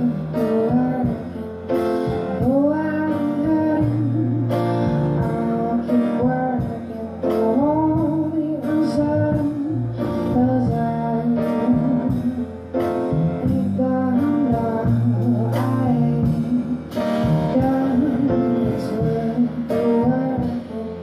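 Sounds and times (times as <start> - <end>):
grand piano: 0.0 - 21.0
woman singing slow song: 0.0 - 21.0.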